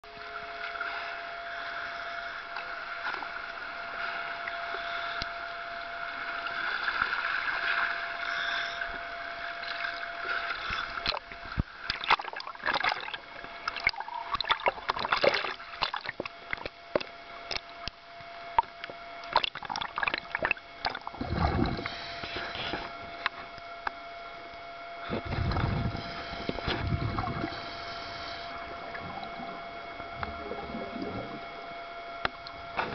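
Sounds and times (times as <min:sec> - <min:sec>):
faint steady tone: 0:00.0 - 0:32.9
underwater hiss: 0:00.8 - 0:11.6, 0:21.1 - 0:23.2, 0:25.0 - 0:31.5.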